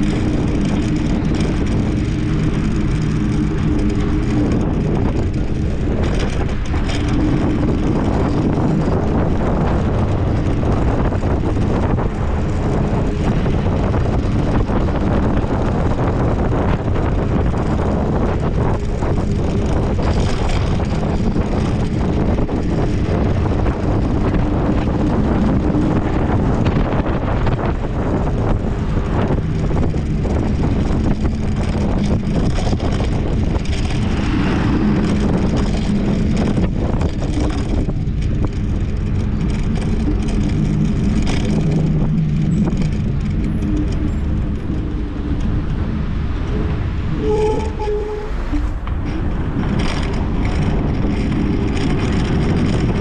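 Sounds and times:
car engines running: 0.0 - 53.0
scooter road noise: 0.0 - 53.0
wind rush over microphone: 0.0 - 53.0.

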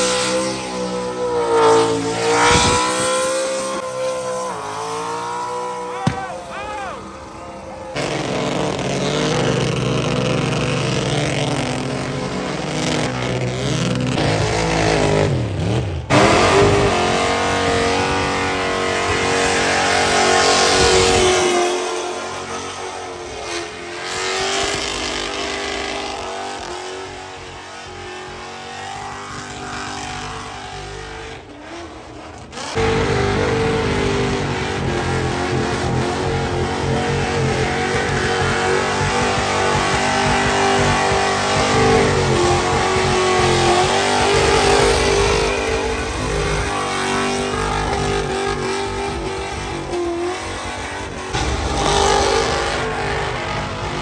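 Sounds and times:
engine revving hard: 0.0 - 54.0
tires spinning on pavement: 0.0 - 54.0.

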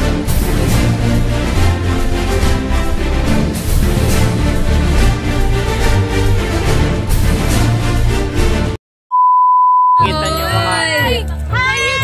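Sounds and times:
steady test-tone beep: 9.1 - 10.1.

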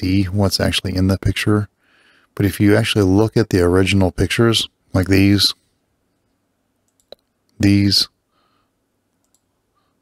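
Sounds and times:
faint computer mouse click: 6.9 - 7.3, 9.1 - 9.5.

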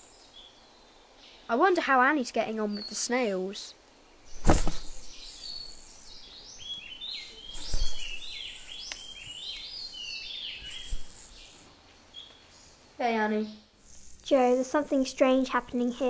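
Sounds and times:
soft thump: 4.4 - 5.0.

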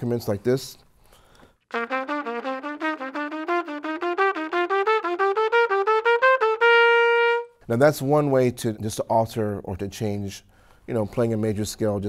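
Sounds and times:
trumpet playing a scale: 1.7 - 7.6.

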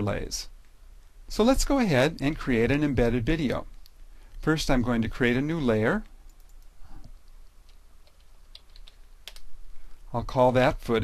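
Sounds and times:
computer keyboard typing: 6.3 - 9.5.

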